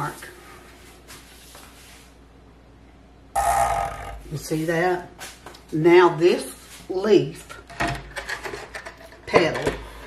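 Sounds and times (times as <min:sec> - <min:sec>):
loud throaty vocal sound: 0:03.4 - 0:04.3
low hum: 0:03.4 - 0:04.6.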